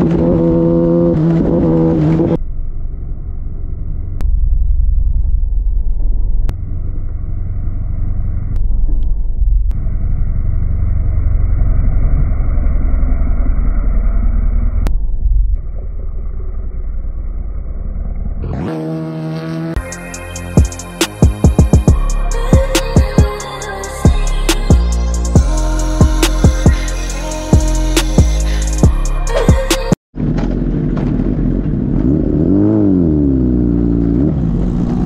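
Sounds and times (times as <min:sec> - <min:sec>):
muffled motorcycle engine at speed: 0:00.0 - 0:19.8, 0:30.2 - 0:35.0.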